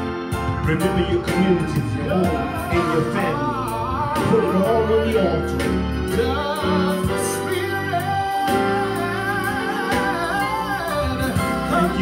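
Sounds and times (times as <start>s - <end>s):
sustained backing chords: 0.0s - 12.0s
person singing gospel: 0.1s - 12.0s.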